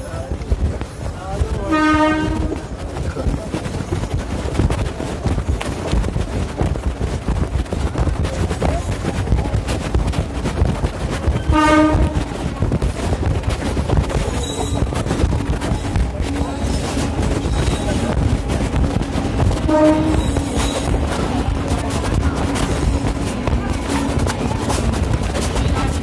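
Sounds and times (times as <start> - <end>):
passenger train rumbling and rattling: 0.0 - 26.0
train horn: 1.6 - 2.6, 11.4 - 12.4, 19.6 - 20.6.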